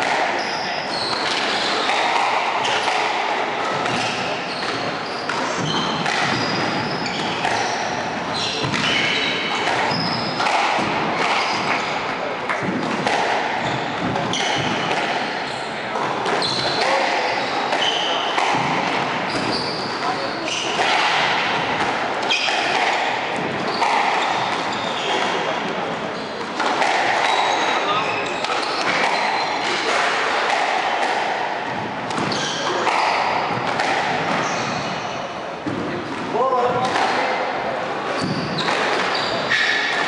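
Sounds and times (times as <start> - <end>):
sneakers squeaking on wooden floor: 0.0 - 40.0
squash ball striking walls: 0.0 - 40.0.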